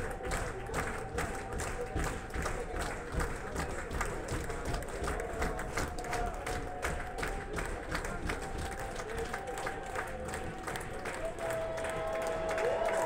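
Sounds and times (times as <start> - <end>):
audience applauding: 0.0 - 13.0
crowd voices: 0.0 - 13.0.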